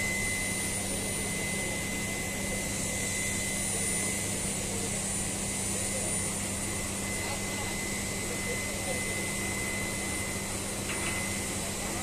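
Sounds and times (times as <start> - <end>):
machinery hum with high whine: 0.0 - 12.0.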